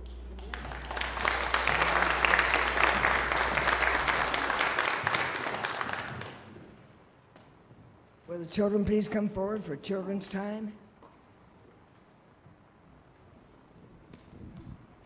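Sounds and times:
congregation clapping: 0:00.0 - 0:06.8.

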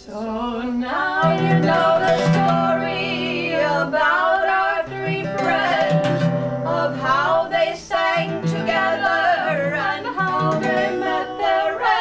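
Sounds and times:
women singing in harmony: 0:00.0 - 0:12.0
strummed acoustic guitar: 0:01.2 - 0:12.0.

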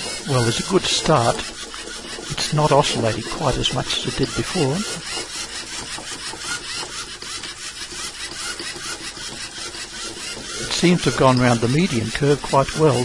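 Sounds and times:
robot motors whirring: 0:00.0 - 0:13.0.

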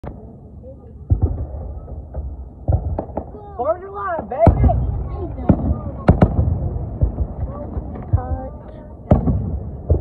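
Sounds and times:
fireworks booming: 0:01.0 - 0:10.0
low rumble: 0:04.4 - 0:10.0.

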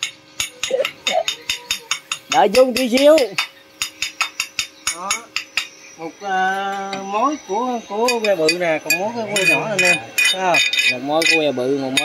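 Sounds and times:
faint steady hum: 0:00.0 - 0:12.0
rapid metallic ticking: 0:00.0 - 0:12.0.

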